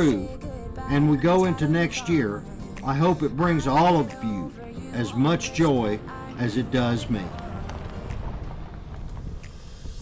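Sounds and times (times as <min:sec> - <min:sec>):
vehicle rumbling on gravel: 0:05.9 - 0:10.0.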